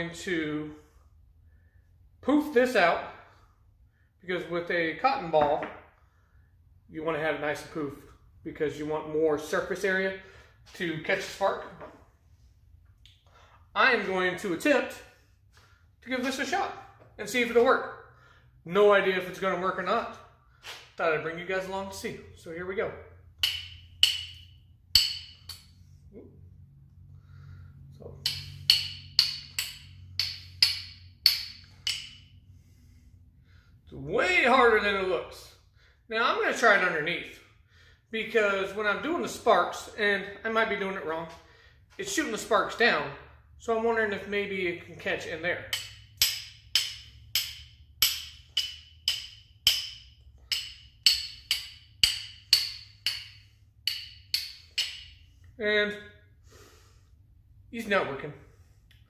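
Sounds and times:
steel striker on flint: 0:45.7 - 0:55.2.

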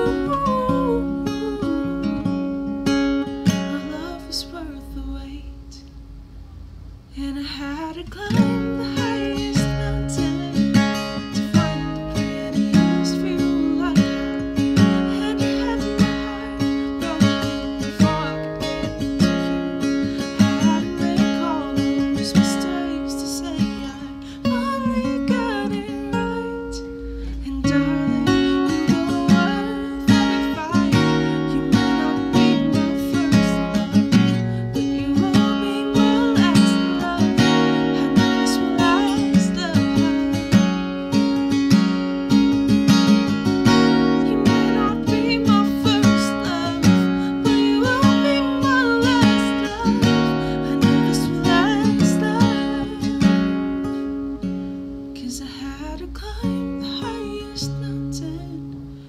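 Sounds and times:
woman singing: 0:00.0 - 0:05.9, 0:07.1 - 0:54.5, 0:55.1 - 0:59.0
acoustic guitar strumming: 0:00.0 - 0:06.2, 0:07.2 - 0:59.0.

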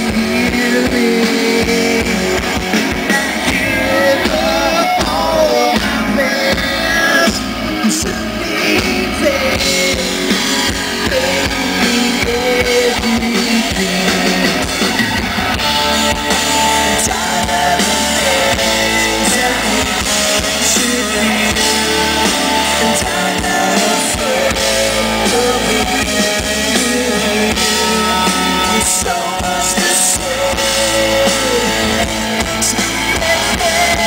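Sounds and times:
man singing lead vocal: 0:00.0 - 0:34.0
rock band playing live: 0:00.0 - 0:34.0.

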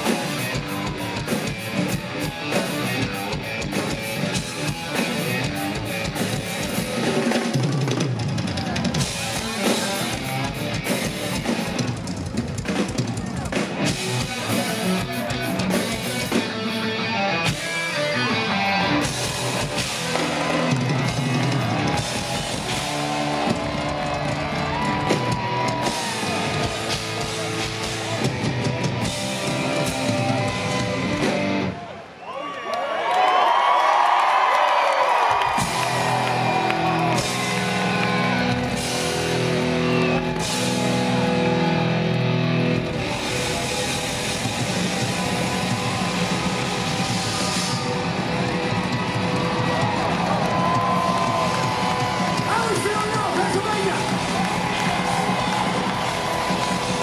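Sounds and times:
band backing music: 0:00.0 - 0:31.9, 0:35.0 - 0:57.0
rock drum kits played hard: 0:00.0 - 0:31.9, 0:33.8 - 0:57.0
crowd cheering and whooping: 0:00.0 - 0:57.0.

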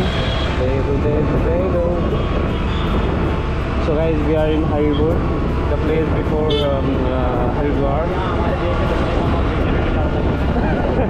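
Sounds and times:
motorcycle engine and road noise: 0:00.0 - 0:11.0
wind buffeting: 0:00.0 - 0:11.0.

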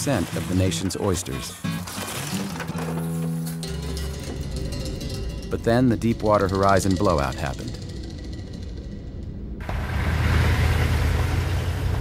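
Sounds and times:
diesel engine rumbling: 0:03.6 - 0:12.0
water splashing from tyres: 0:09.6 - 0:12.0.

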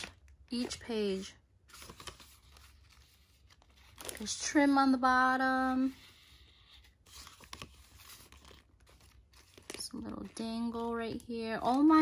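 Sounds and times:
paper pages rustling: 0:00.0 - 0:04.7, 0:05.5 - 0:12.0.

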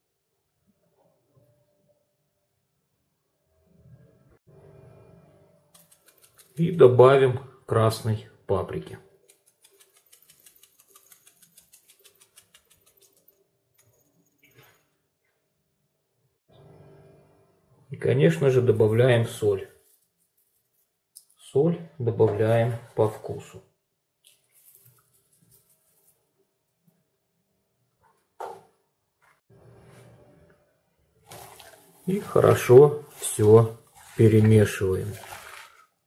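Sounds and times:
spice jar shaking clicks: 0:05.8 - 0:06.6, 0:09.2 - 0:14.0.

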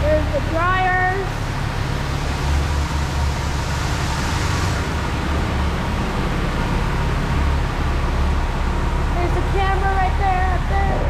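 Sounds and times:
car wash dryer blowers: 0:00.0 - 0:11.0.

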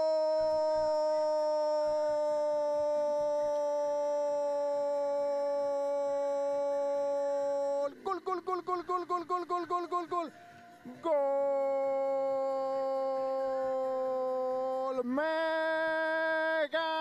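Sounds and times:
commentator's long held shout: 0:00.0 - 0:17.0.

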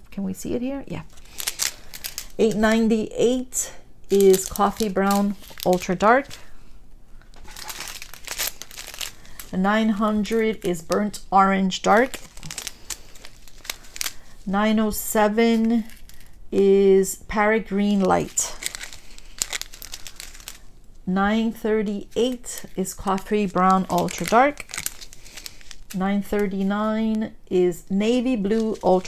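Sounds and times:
plastic bags crinkling: 0:00.9 - 0:03.4, 0:04.1 - 0:06.6, 0:07.2 - 0:16.4, 0:17.9 - 0:20.8, 0:22.0 - 0:27.1, 0:28.4 - 0:29.0.

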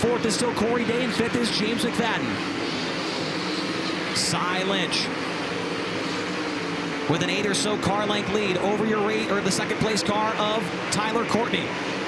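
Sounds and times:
racing car engines droning: 0:00.0 - 0:12.0.

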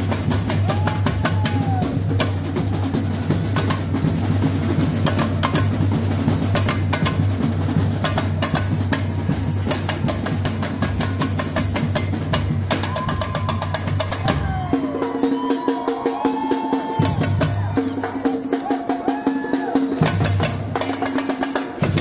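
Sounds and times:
tamborins fast rhythm: 0:00.0 - 0:22.0.

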